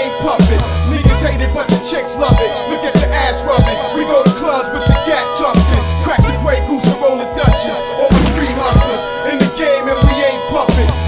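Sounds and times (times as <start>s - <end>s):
rapping over a beat: 0.0s - 11.0s
deep bass notes: 8.1s - 9.0s.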